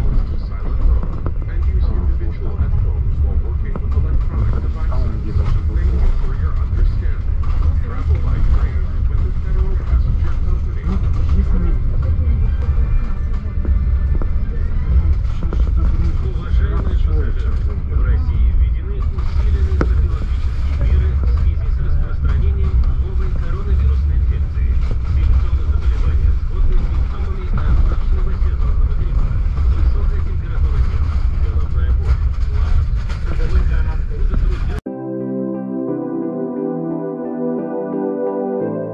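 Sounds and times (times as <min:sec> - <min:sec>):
train wheels rumbling on rails: 0:00.0 - 0:34.8.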